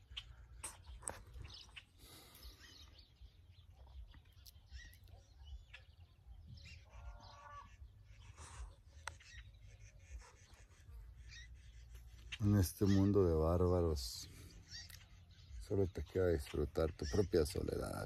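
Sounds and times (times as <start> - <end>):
bird chirps and calls: 0.0 - 18.0.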